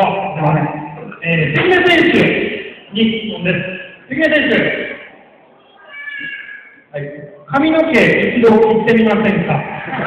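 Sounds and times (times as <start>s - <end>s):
man's amplified speech: 0.0s - 5.1s, 6.9s - 10.0s
high-pitched vocal call: 4.8s - 6.9s.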